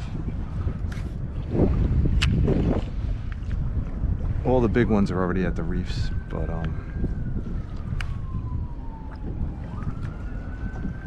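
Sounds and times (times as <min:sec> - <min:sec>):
wind rumble on microphone: 0:00.0 - 0:11.0
siren wailing: 0:04.5 - 0:11.0.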